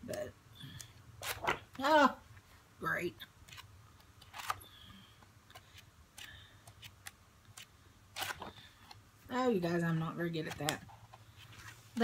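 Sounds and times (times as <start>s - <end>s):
paper pages flicking and rustling: 1.2s - 1.8s.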